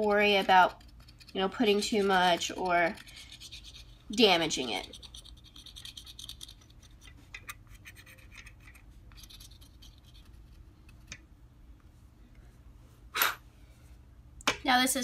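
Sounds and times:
chalk scratching on stencil: 0:00.4 - 0:03.9.

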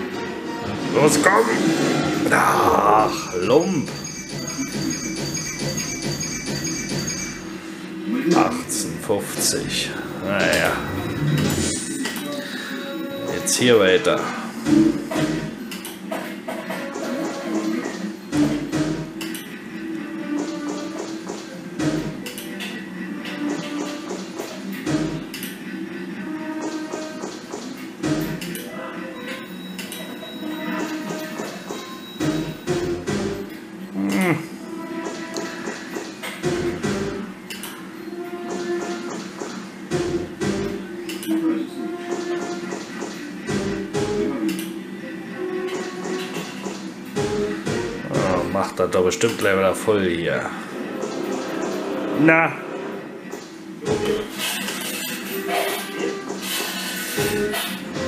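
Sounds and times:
slot machine electronic music: 0:00.0 - 0:58.0
pinging chiming effects: 0:03.2 - 0:07.7, 0:10.0 - 0:13.8, 0:29.1 - 0:32.8.

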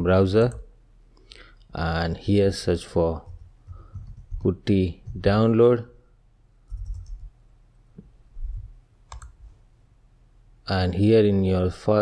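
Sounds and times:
keyboard keystrokes: 0:06.7 - 0:07.3, 0:09.1 - 0:09.4.

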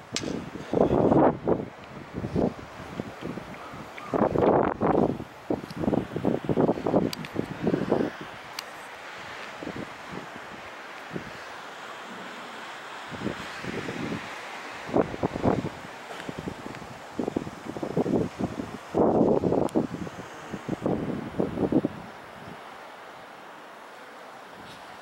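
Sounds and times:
wind buffeting microphone: 0:00.0 - 0:12.4, 0:13.0 - 0:22.7
steady background hiss: 0:00.0 - 0:25.0.

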